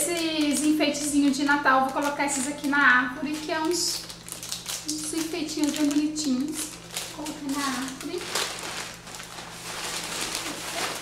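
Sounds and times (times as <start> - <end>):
plastic bag rustling: 0.0 - 11.0.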